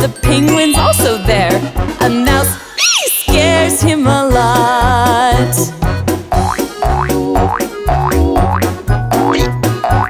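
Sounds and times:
upbeat children's song: 0.0s - 6.7s
cartoon boing glides: 6.3s - 10.0s.

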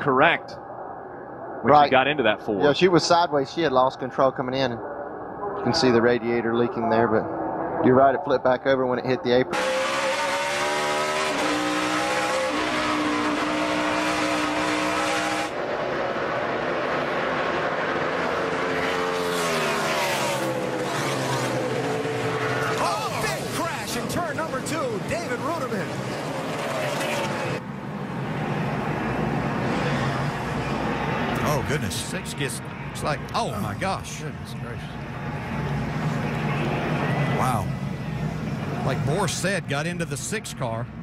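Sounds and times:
race car engines: 2.5s - 41.0s.

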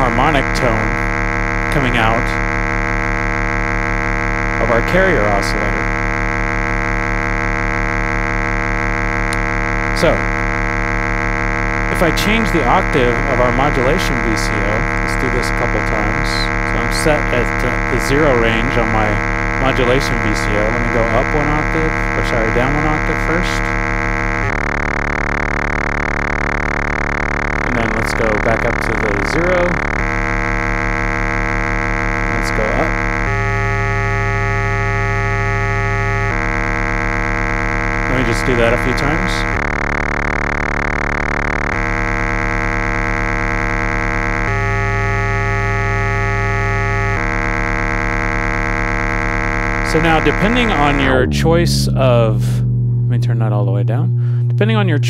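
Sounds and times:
inharmonic synthesizer tone: 0.0s - 55.0s.

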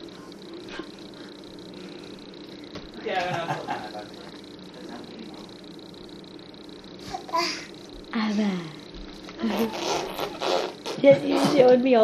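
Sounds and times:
steady high hum: 0.0s - 12.0s.

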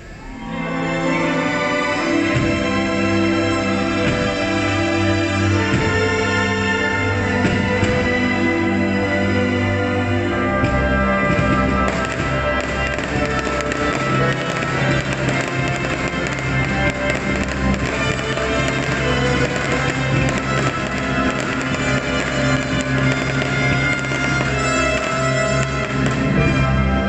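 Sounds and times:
orchestral music over sound system: 0.0s - 27.0s
fireworks bursting: 1.3s - 27.0s.

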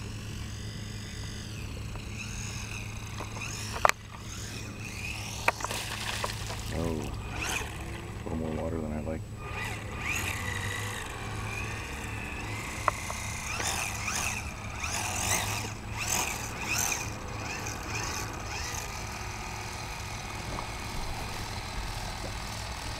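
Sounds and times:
electric motor whine: 0.0s - 22.9s
low engine hum: 0.0s - 22.9s.

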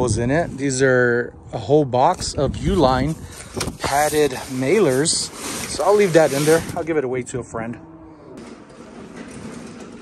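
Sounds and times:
hand cart wheels rolling: 8.4s - 10.0s.

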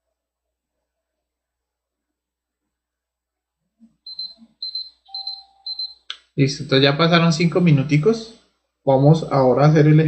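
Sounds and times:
electronic timer alarm beeping: 4.1s - 6.2s.

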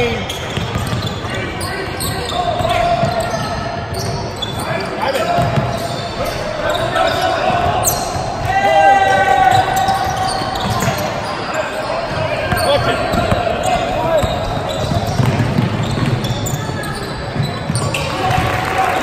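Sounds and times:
sneakers squeaking: 0.0s - 18.4s
voices echoing in a hall: 0.0s - 19.0s
basketball bouncing on hardwood: 14.2s - 16.2s.

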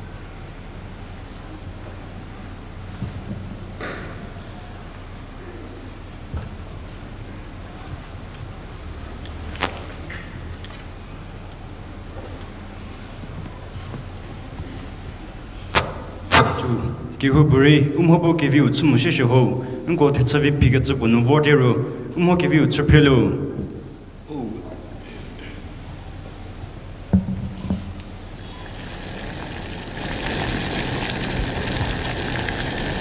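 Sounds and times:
low room noise: 0.0s - 33.0s
sharp knocks: 27.1s - 27.9s.

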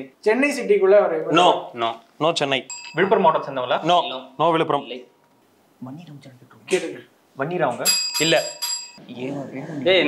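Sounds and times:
bell ringing high tone: 2.7s - 3.4s, 7.8s - 9.0s.

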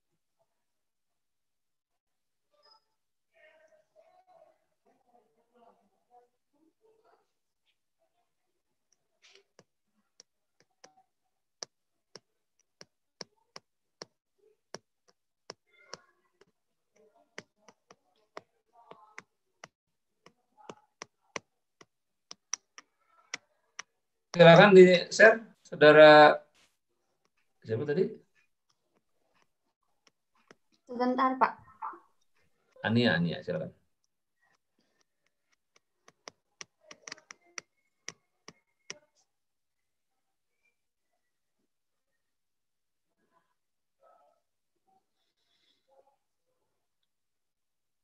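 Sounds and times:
keyboard typing: 11.6s - 24.7s, 34.5s - 39.1s.

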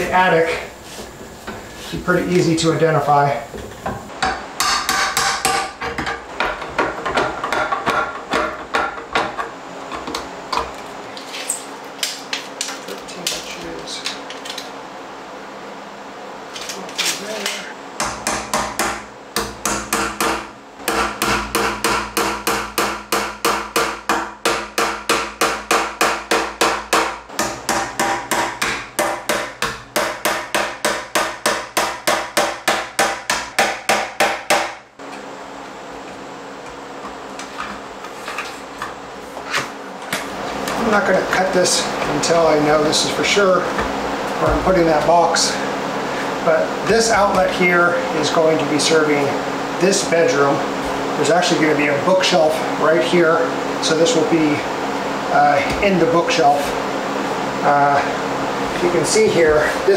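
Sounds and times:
hammer striking wood: 4.2s - 9.5s, 18.0s - 34.8s.

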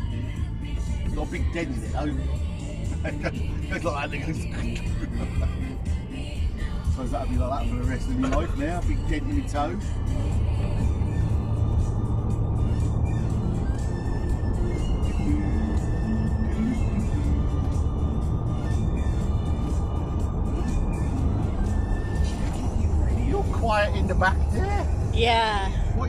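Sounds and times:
car road and engine rumble: 0.0s - 26.0s
faint car radio music: 0.0s - 26.0s.

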